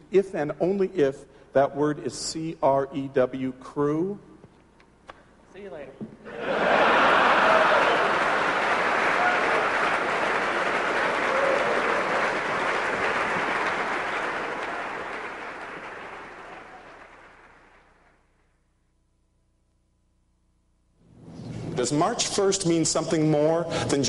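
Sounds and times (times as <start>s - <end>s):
audience applauding: 6.3s - 18.2s.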